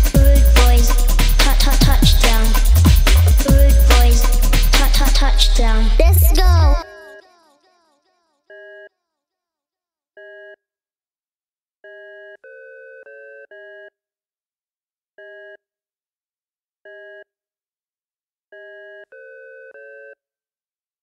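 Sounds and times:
electronic chord stabs: 0.0 - 6.8.

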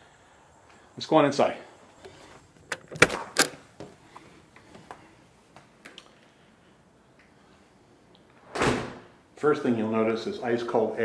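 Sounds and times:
door latch clicks: 2.7 - 3.6.

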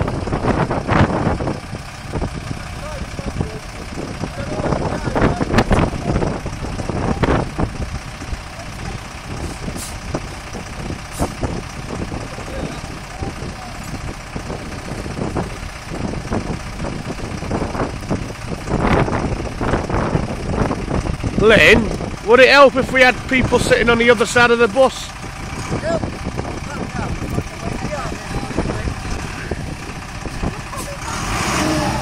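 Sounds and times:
minibus engine running: 0.0 - 32.0
people's voices: 1.4 - 18.7, 20.2 - 32.0.

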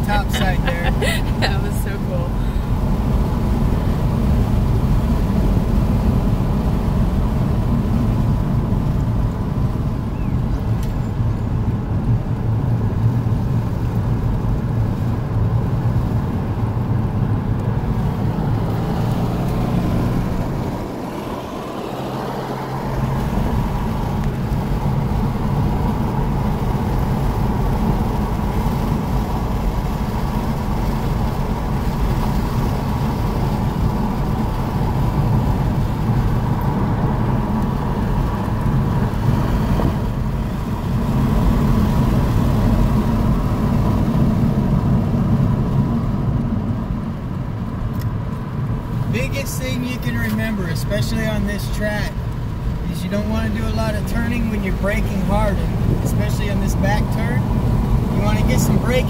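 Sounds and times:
car engine and tyre rumble: 0.0 - 59.0.

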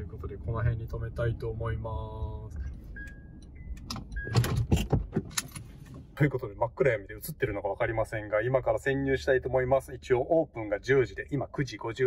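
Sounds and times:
short electronic beeps: 2.9 - 4.5.

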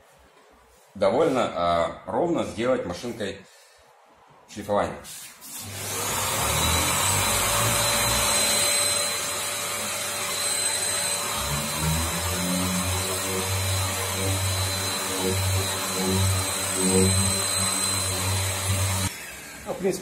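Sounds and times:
orbital sander whining: 5.6 - 19.8.

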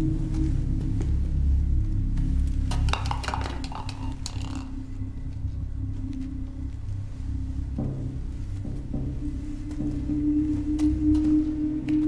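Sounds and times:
suspense film score drone: 0.0 - 12.0.

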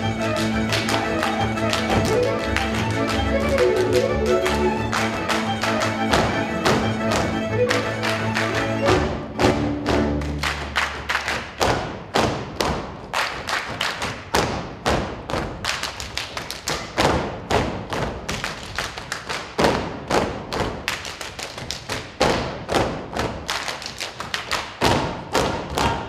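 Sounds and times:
rhythmic stamping and boot-slapping: 0.0 - 26.0.

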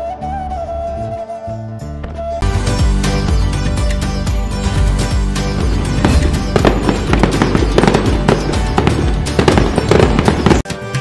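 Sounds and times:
background music: 0.0 - 11.0
firecracker bangs: 5.7 - 10.6.

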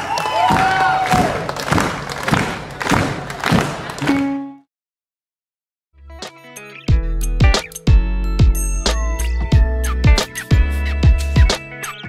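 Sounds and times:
crowd cheering: 0.0 - 4.4
bass drum beating: 6.9 - 11.5.

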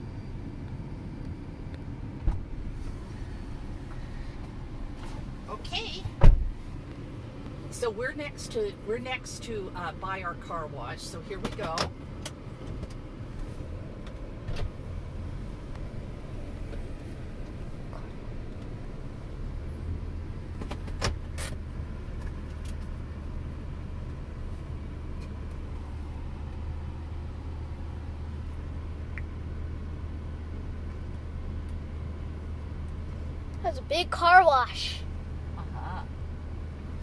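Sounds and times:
air conditioning running: 0.0 - 37.0
car engine idling: 0.0 - 37.0.

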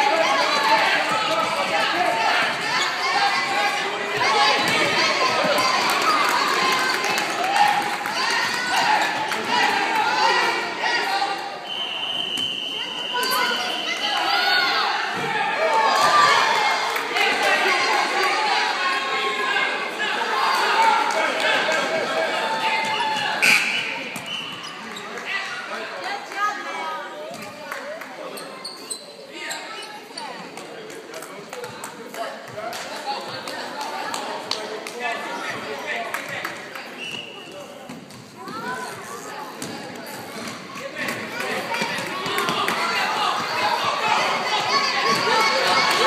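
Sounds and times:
people's voices: 0.0 - 46.0.

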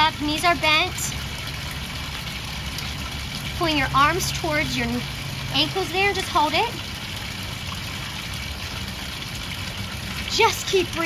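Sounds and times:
constant low rumble: 0.0 - 11.0
fountain water splashing: 0.0 - 11.0.

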